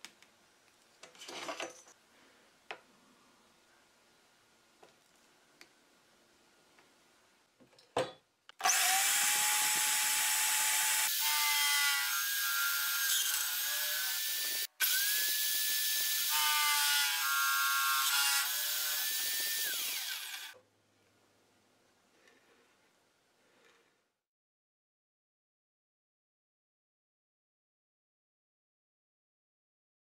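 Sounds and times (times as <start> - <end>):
electric drill boring through plastic: 8.6 - 20.6.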